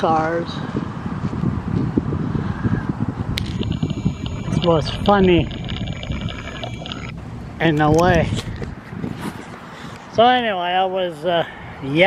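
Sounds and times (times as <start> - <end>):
wind buffeting microphone: 0.3 - 9.6.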